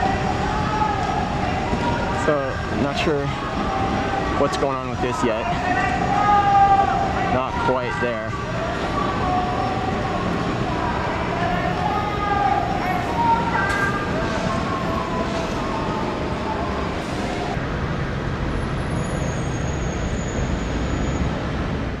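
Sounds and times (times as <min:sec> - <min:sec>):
road traffic rumble and hiss: 0:00.0 - 0:22.0.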